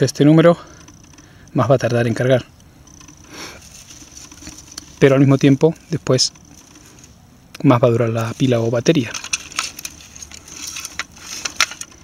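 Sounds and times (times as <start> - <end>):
plastic rustle: 3.5 - 7.2, 8.1 - 12.0.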